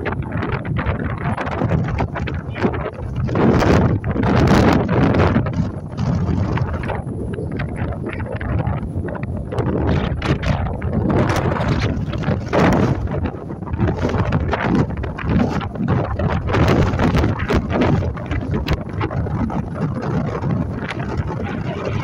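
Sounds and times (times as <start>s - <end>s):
boat engine: 0.0s - 22.0s
water noise: 0.0s - 22.0s
wind buffeting microphone: 0.0s - 22.0s.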